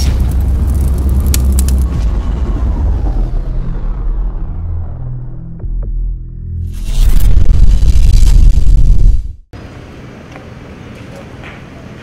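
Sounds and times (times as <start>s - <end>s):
deep rumble: 0.0s - 9.5s
crackling clicks and hiss: 0.4s - 1.8s.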